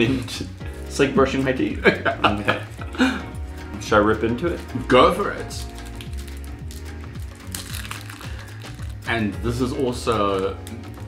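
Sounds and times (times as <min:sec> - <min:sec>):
background music with steady beat: 0:00.0 - 0:11.0
plastic wrapper crinkling: 0:04.5 - 0:11.0.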